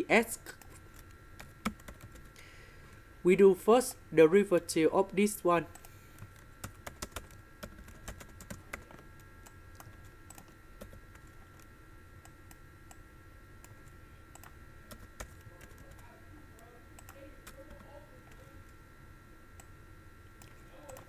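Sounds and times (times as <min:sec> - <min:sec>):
faint high hum: 0:00.0 - 0:21.0
computer keyboard typing: 0:00.6 - 0:02.4, 0:05.7 - 0:12.6, 0:13.6 - 0:16.1, 0:17.0 - 0:18.5, 0:20.4 - 0:21.0.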